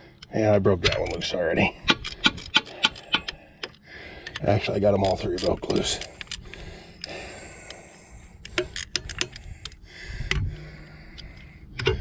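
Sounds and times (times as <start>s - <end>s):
ratchet wrench clicking: 8.4s - 10.4s.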